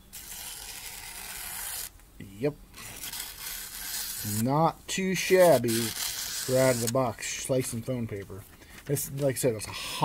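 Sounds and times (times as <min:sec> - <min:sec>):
knife slicing paper: 0:00.0 - 0:01.9, 0:02.8 - 0:04.5, 0:05.2 - 0:07.2.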